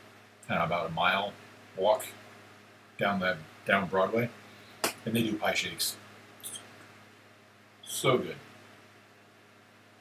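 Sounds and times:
soft high-pitched hiss: 0.0s - 10.0s
man speaking: 0.5s - 2.2s, 3.0s - 4.4s, 5.0s - 6.6s, 7.8s - 8.4s.

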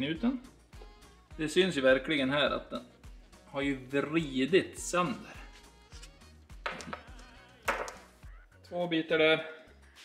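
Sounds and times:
background music with bass line: 0.0s - 8.8s.

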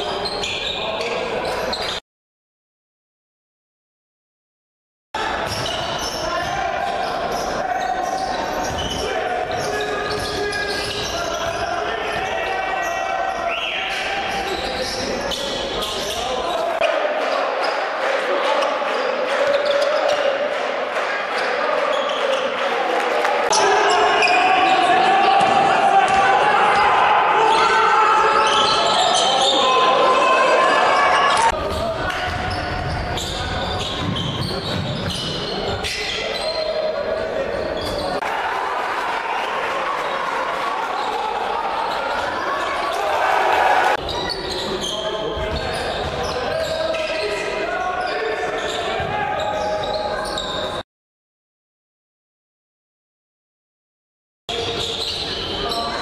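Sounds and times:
players and crowd voices: 0.0s - 2.0s, 5.2s - 50.8s, 54.5s - 56.0s.

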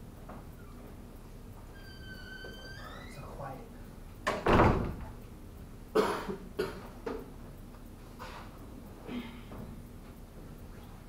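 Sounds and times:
loud cough: 6.0s - 6.9s.

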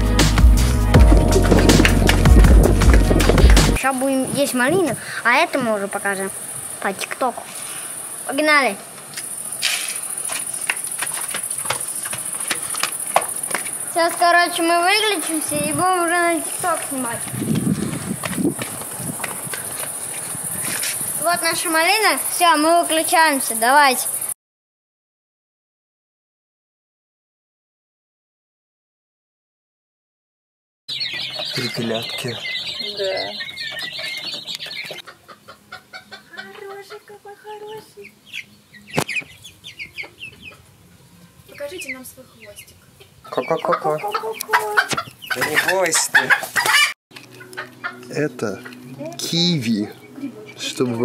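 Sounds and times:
running footsteps on pavement: 1.0s - 3.8s, 9.1s - 21.7s
sharp knock: 1.0s - 3.8s
hens clucking and calling: 30.9s - 49.2s
chicks peeping: 30.9s - 51.0s.

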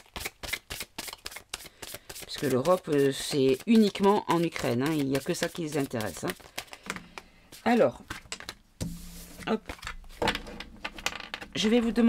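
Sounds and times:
cards being shuffled: 0.0s - 11.3s.

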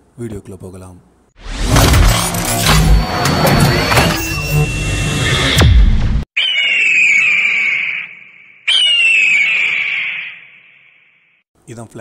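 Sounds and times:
hawk screeching: 6.4s - 10.8s.

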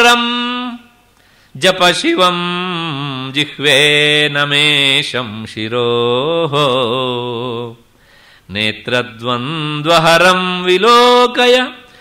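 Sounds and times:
man chanting a devotional verse: 0.0s - 0.9s, 1.6s - 7.8s, 8.5s - 12.0s.

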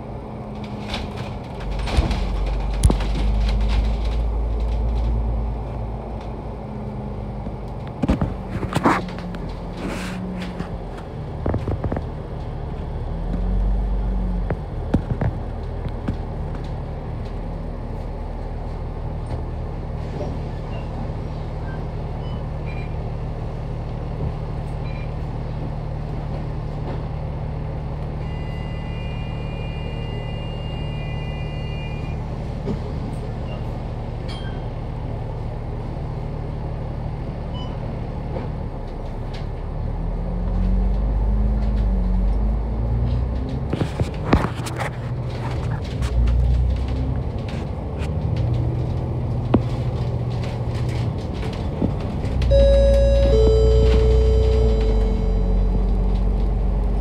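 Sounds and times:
bus diesel engine idling and revving: 0.0s - 57.0s
steady high tone: 52.5s - 56.7s.

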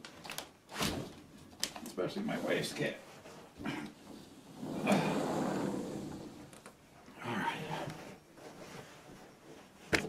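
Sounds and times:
window frame scraping: 2.3s - 6.6s.

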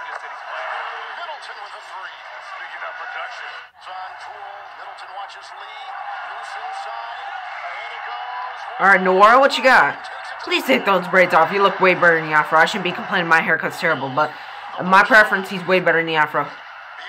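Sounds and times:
arena crowd noise: 0.0s - 17.0s
commentator talking: 0.6s - 17.0s.

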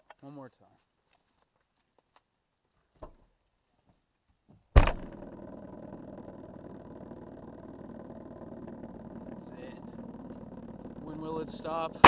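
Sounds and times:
car trunk lid slamming: 4.8s - 5.2s
plastic bottle buzzing on metal roof: 4.8s - 12.0s.

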